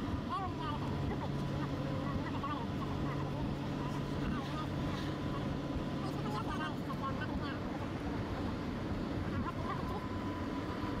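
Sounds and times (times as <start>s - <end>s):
vehicle engine and tyre rumble: 0.0s - 11.0s.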